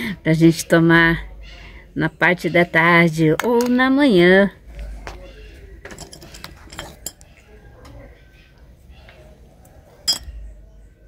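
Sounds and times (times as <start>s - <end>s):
small objects clicking and clinking: 5.9s - 7.2s.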